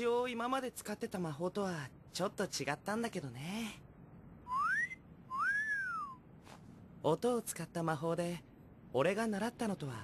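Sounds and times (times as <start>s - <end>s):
whistled notes: 4.5s - 6.2s.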